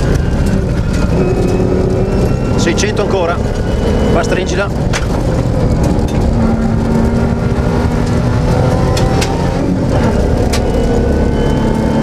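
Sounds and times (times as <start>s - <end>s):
car engine running hard: 0.0s - 12.0s.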